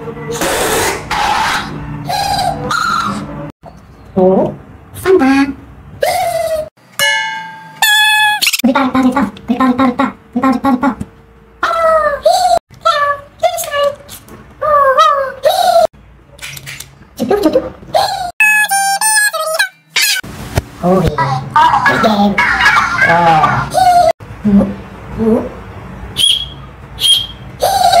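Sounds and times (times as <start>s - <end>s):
toy whistle blasts: 26.2s - 27.4s.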